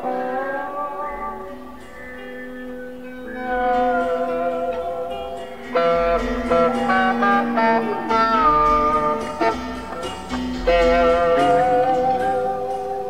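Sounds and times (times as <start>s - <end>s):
sustained electric guitar notes: 0.0s - 13.0s.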